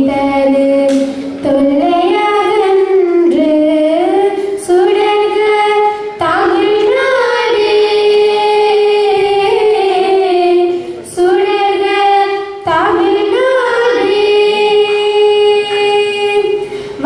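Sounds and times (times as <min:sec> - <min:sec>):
girls singing together: 0:00.0 - 0:17.0
short breaths: 0:16.6 - 0:17.0.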